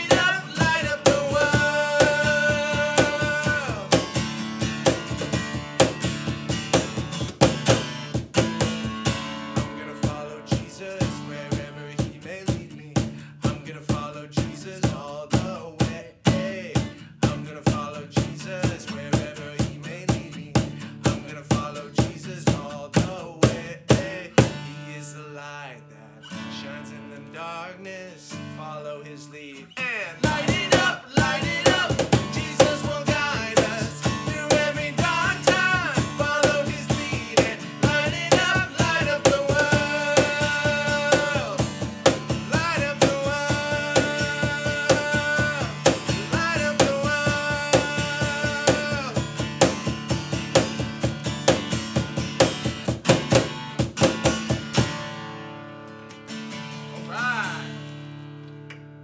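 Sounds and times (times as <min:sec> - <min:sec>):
person singing: 0:00.0 - 0:04.2, 0:09.6 - 0:49.3, 0:56.9 - 0:57.8
percussion beat: 0:00.0 - 0:10.6, 0:30.2 - 0:55.0
acoustic guitar strumming: 0:00.0 - 0:59.0.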